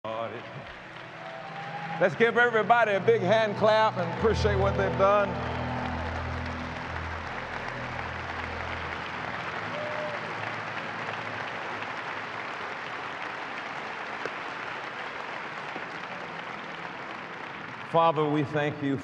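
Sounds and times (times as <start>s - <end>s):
crowd applauding: 0.0s - 19.0s
low held background music: 0.1s - 12.5s.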